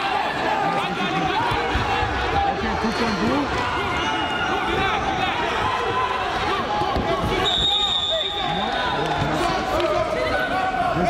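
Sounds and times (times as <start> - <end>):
crowd calling out: 0.0 - 11.0.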